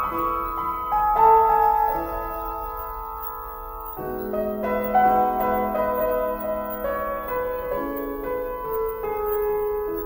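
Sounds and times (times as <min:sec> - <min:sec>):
piano notes: 0:00.0 - 0:10.0.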